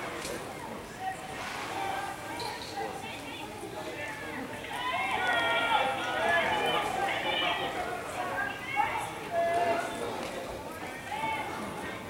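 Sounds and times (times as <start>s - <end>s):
spectators shouting: 4.7s - 9.7s.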